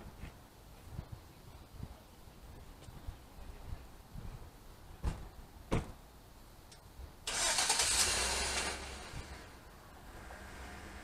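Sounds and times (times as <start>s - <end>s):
vehicle engine starting: 7.2s - 11.0s.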